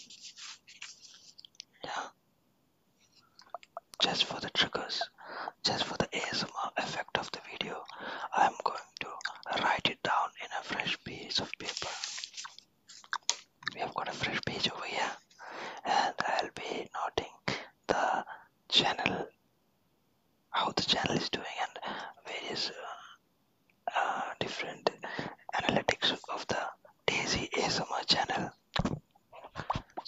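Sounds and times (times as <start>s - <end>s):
person whispering close: 0.0s - 2.2s, 3.0s - 12.6s, 13.6s - 19.4s, 20.5s - 23.2s, 23.9s - 30.0s.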